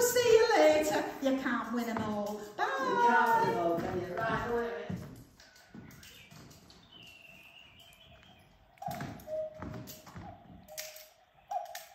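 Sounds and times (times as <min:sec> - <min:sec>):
cuckoo clock calling: 0:05.5 - 0:11.9.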